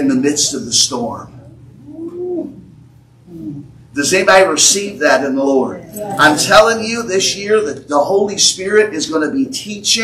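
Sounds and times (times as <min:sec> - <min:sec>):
person humming mm-hmm: 0:01.8 - 0:03.8.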